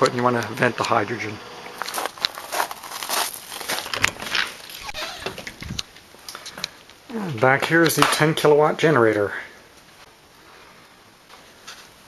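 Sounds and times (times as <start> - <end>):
footsteps crunching on gravel: 1.7 - 4.8.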